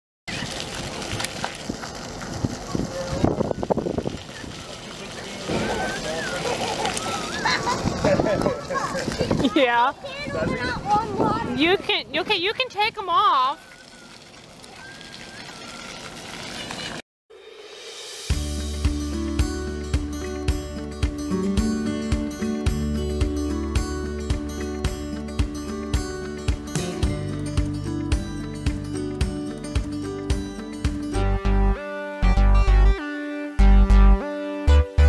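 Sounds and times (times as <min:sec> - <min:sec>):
fountain jets splattering on pavement: 0:00.3 - 0:17.0
children shouting: 0:05.6 - 0:07.9.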